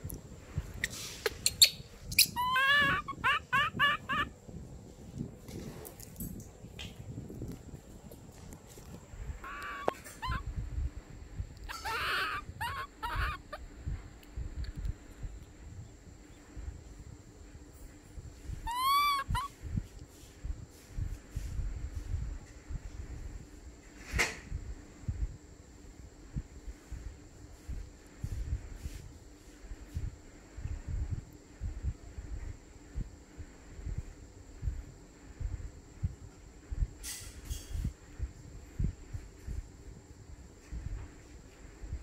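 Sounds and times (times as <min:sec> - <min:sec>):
baby monkey crying: 0:00.8 - 0:04.3, 0:09.4 - 0:10.5, 0:11.6 - 0:13.6, 0:18.6 - 0:19.5.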